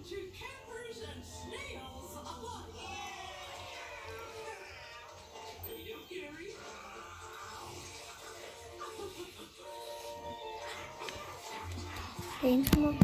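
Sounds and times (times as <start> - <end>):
television voices and music: 0.0 - 13.0.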